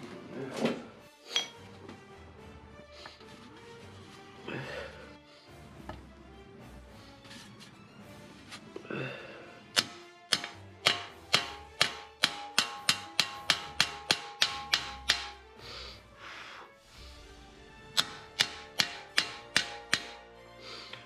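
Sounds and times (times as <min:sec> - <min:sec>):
background music: 0:00.0 - 0:21.0
hammer striking sheet steel: 0:09.8 - 0:15.4, 0:17.9 - 0:20.3.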